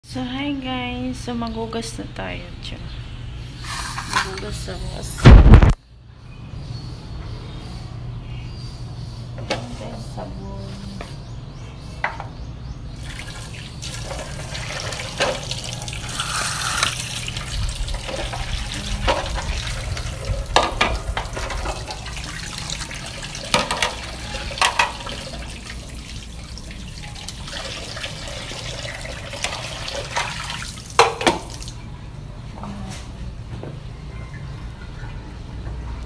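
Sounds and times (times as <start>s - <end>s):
water running and splashing: 13.0s - 31.8s
plates knocking: 23.5s - 24.0s, 24.6s - 25.1s, 31.0s - 31.5s.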